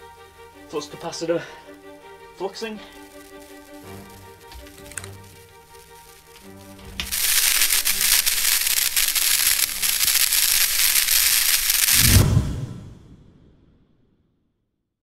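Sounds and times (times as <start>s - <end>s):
music with long held notes: 0.0s - 11.4s
electric crackling and zapping: 1.7s - 12.5s.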